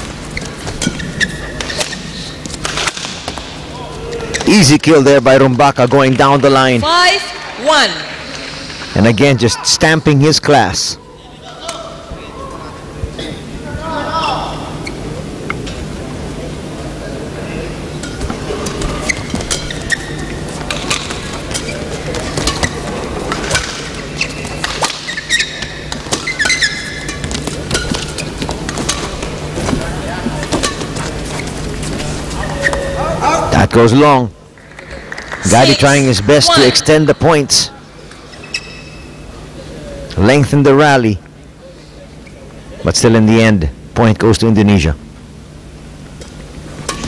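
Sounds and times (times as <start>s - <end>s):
steady hum: 0.0s - 47.0s
murmur of voices: 10.9s - 24.8s
racket striking shuttlecock: 18.0s - 29.6s, 30.4s - 31.2s, 46.2s - 47.0s
shoes on court: 18.2s - 33.0s.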